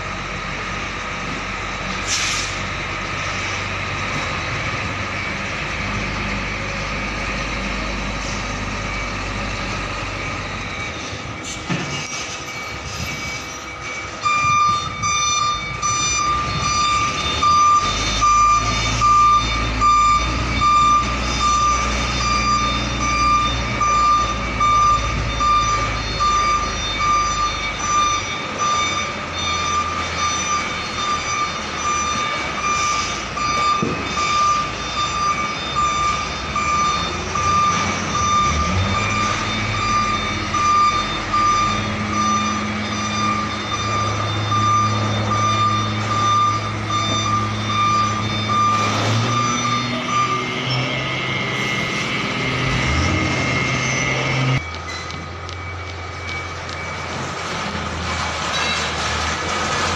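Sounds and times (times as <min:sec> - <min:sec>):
truck reversing alarm beeping: 0:00.0 - 0:59.9
diesel engine at low revs: 0:35.8 - 0:59.9.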